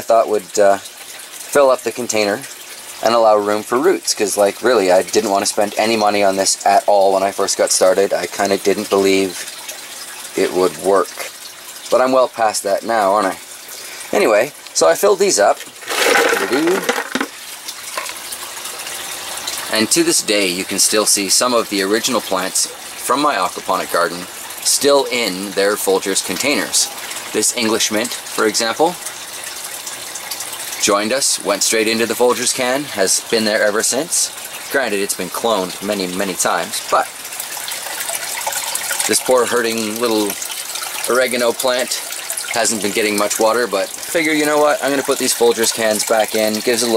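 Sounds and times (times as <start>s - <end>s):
running water rushing: 0.0s - 46.9s
plastic can knocks: 15.9s - 17.3s.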